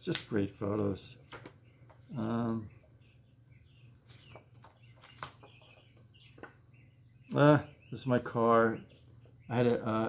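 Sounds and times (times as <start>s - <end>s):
faint chirps: 0.0s - 10.0s
handling photographs: 3.9s - 6.5s.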